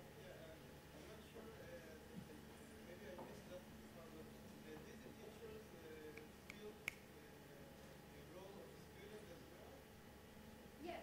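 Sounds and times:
faint murmuring voices: 0.0 - 10.0.

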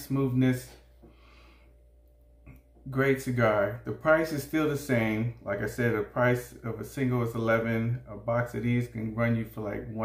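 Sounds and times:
soft exhale: 1.0 - 1.9.

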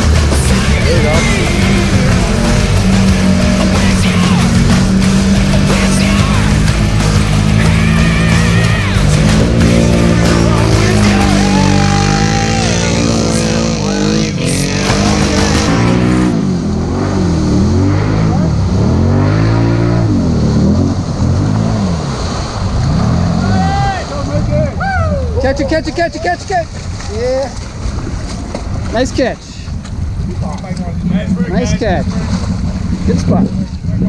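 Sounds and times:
music: 0.0 - 13.5
atv engine revving: 0.0 - 34.0.

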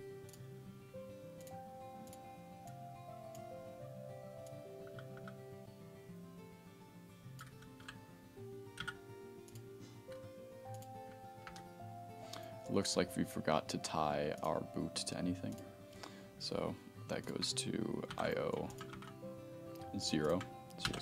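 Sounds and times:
slow background music: 0.0 - 21.0
computer keyboard clicks: 4.5 - 5.4, 7.4 - 8.0, 8.7 - 11.7, 18.1 - 19.2, 19.8 - 21.0.

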